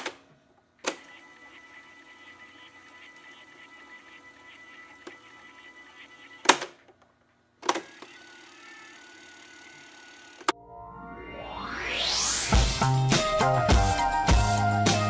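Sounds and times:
low hum: 10.6s - 13.6s.

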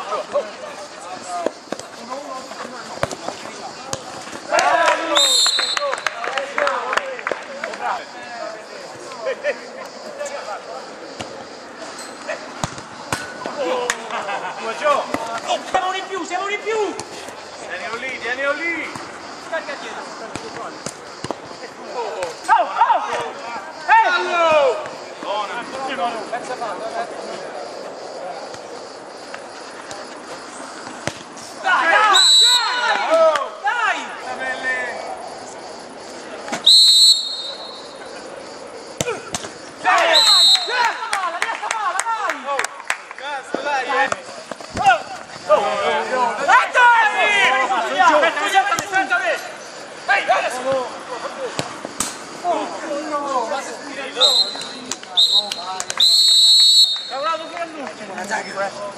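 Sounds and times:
distant players' voices: 0.0s - 58.9s
ball kicks: 2.6s - 4.5s, 12.6s - 13.6s, 18.8s - 19.2s, 20.2s - 21.6s, 30.8s - 31.3s, 39.0s - 39.6s, 44.0s - 45.4s, 51.5s - 52.2s
referee's whistle blasts: 5.0s - 6.2s, 32.0s - 33.1s, 36.6s - 38.0s, 40.0s - 41.0s, 54.1s - 57.5s.

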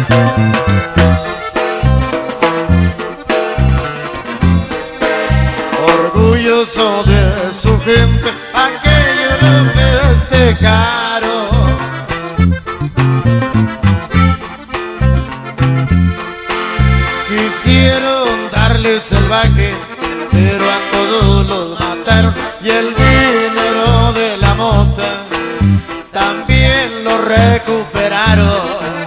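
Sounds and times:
accordion melody: 0.0s - 29.0s
short bass notes: 0.0s - 29.0s
strummed guitar: 0.0s - 29.0s.

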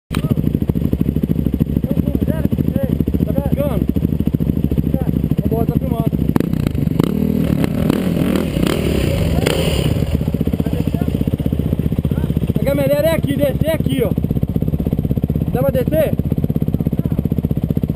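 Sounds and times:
engine rattling: 0.1s - 17.9s
motorcycle engines running: 0.1s - 17.9s.

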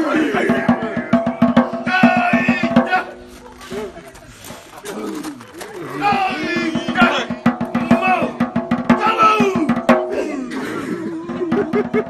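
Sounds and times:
men shouting war cries: 0.0s - 3.3s, 4.8s - 11.7s.

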